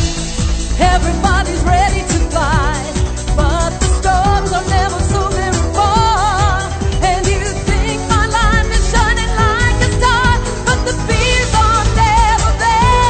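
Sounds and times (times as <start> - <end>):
pop song with singing: 0.0 - 13.0.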